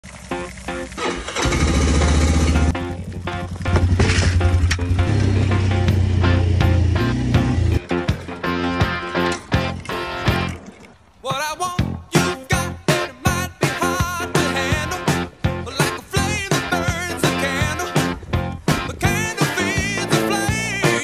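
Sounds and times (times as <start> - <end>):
quad bike engine running: 0.1 - 7.8
background music: 0.3 - 10.7, 11.6 - 21.0.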